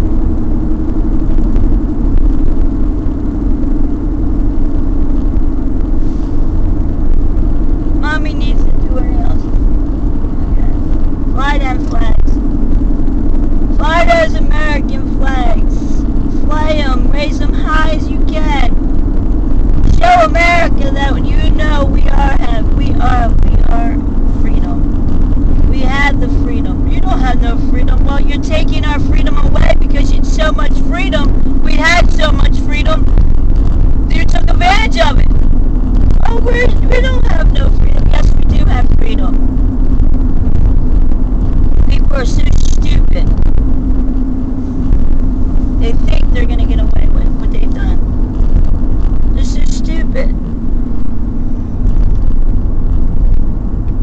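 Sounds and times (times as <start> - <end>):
car road and engine drone: 0.0 - 54.0
person talking: 8.0 - 9.6, 10.3 - 12.5, 13.7 - 18.8, 19.8 - 24.8, 25.7 - 33.1, 34.1 - 35.3, 36.2 - 39.4, 41.9 - 43.4, 45.8 - 48.0, 49.3 - 50.5.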